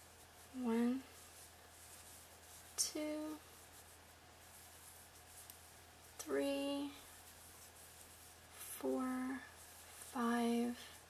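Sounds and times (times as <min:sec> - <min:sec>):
yarn rubbing on crochet hook: 0:00.0 - 0:11.0.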